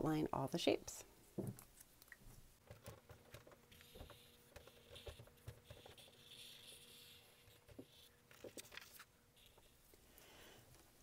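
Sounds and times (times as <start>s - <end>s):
marker scratching on paper: 3.7s - 9.8s.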